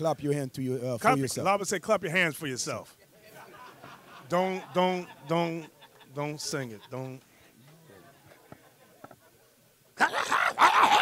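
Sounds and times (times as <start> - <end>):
drawn-out vocal cries: 10.0 - 11.0.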